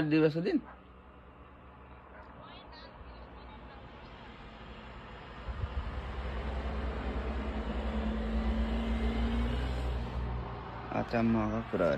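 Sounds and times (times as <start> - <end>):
vehicle passing with road rumble: 0.0 - 11.9.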